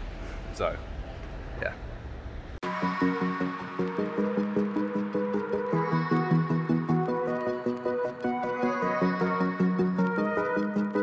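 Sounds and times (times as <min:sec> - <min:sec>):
electronic music with steady beat: 0:02.6 - 0:11.0.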